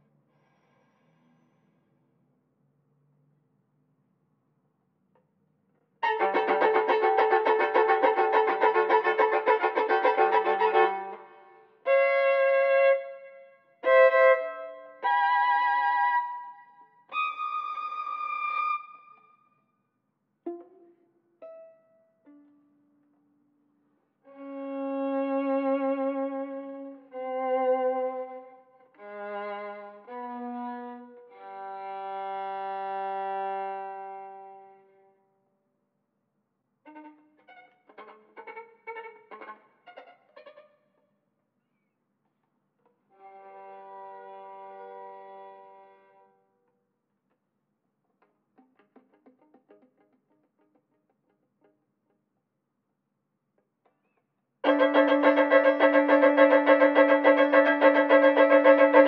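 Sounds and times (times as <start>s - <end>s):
solo violin bowed: 6.0s - 19.4s, 24.2s - 35.2s, 36.8s - 40.8s, 43.1s - 46.4s, 54.6s - 59.0s.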